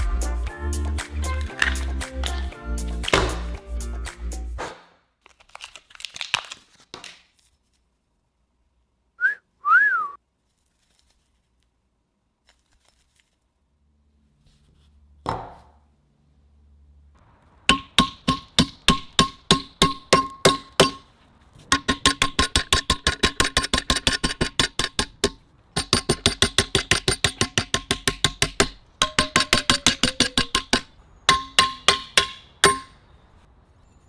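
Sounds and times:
hammer striking metal bar: 0:17.7 - 0:21.1, 0:21.7 - 0:33.1.

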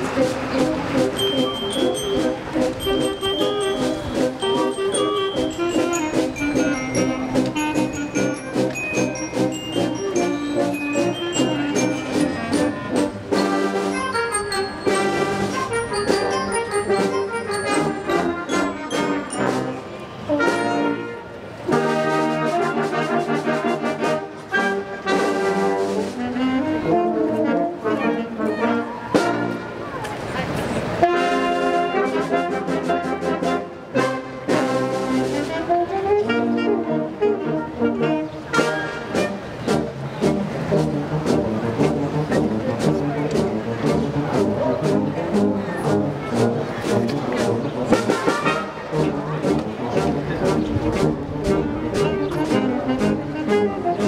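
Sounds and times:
concert band playing: 0:00.0 - 0:54.0.

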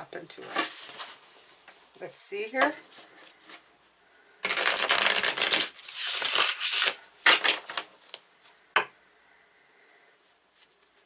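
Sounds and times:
cards being shuffled: 0:04.4 - 0:08.2.

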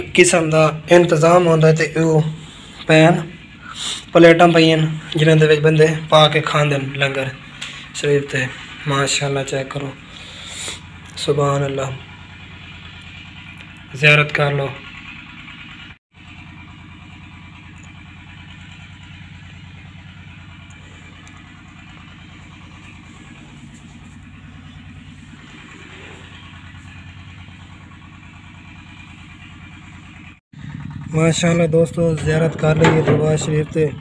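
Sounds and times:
motor running with fast pulse: 0:10.0 - 0:11.2, 0:14.8 - 0:34.0.

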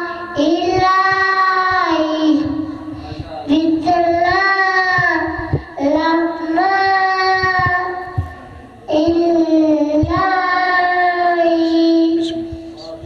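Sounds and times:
boy chanting into a microphone: 0:00.0 - 0:13.0.

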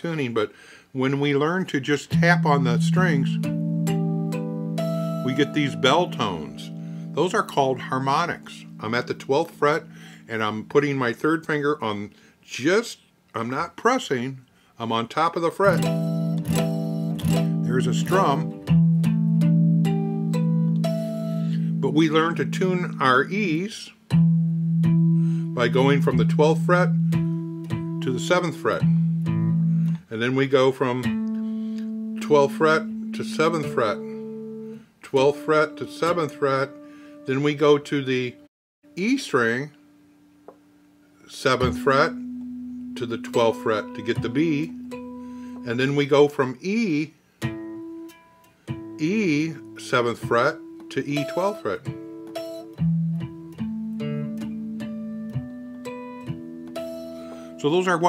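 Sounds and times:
electric guitar harmonics: 0:02.1 - 0:10.2, 0:15.7 - 0:23.4, 0:41.3 - 0:46.2, 0:48.8 - 0:58.0.

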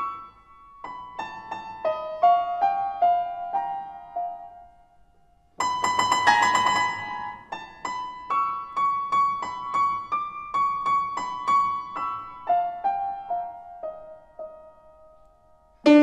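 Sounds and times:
grand piano high notes: 0:15.8 - 0:16.0.

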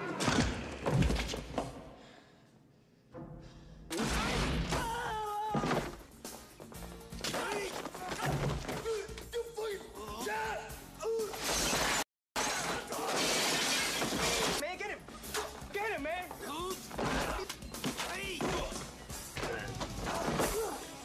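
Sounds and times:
film score music: 0:02.6 - 0:12.0
glass shattering: 0:11.4 - 0:14.6
store goods crashing: 0:11.5 - 0:14.6.

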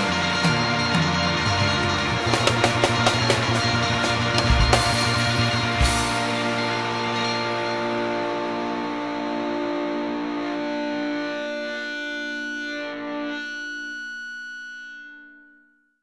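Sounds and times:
distorted electric guitar chord: 0:00.0 - 0:15.6.

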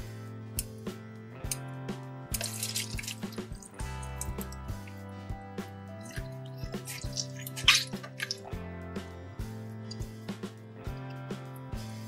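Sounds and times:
background music: 0:00.0 - 0:12.0
water dripping and splashing: 0:02.3 - 0:05.0, 0:06.0 - 0:08.6
water squirting from squeeze toy: 0:02.3 - 0:05.0, 0:06.0 - 0:08.5.

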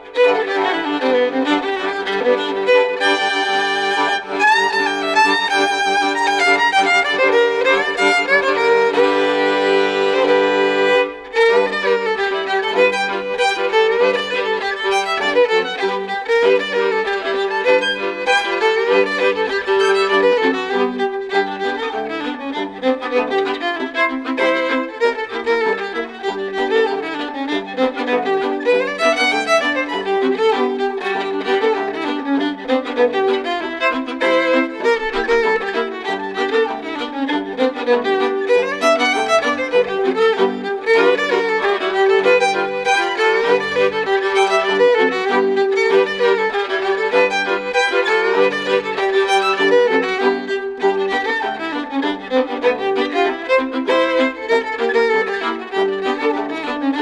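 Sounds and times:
violin trio playing fiddle tune: 0:00.0 - 0:57.0.

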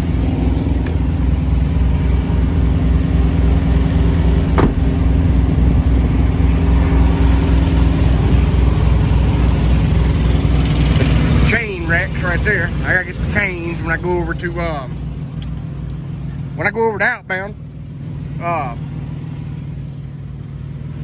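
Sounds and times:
small diesel engine running: 0:00.0 - 0:21.0.

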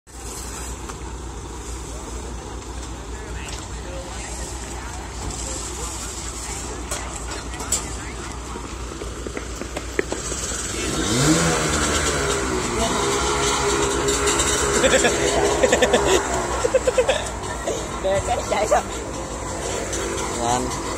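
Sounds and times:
vehicle engine rumbling and revving: 0:00.1 - 0:20.9.

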